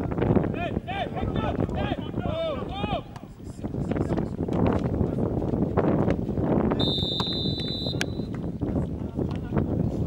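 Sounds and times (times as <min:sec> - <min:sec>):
shouting voices: 0:00.5 - 0:03.2
referee's whistle blast: 0:06.8 - 0:08.3.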